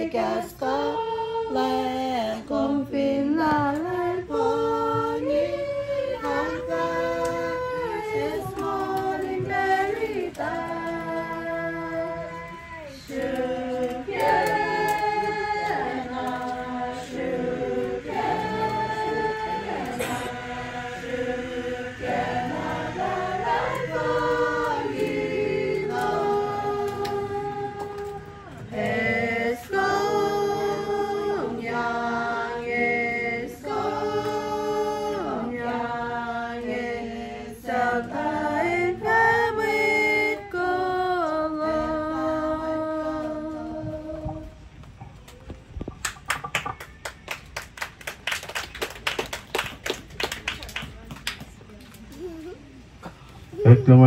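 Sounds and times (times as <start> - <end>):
group singing in parts: 0.0 - 45.1
rhythmic hand clapping: 3.6 - 29.1, 45.9 - 51.6.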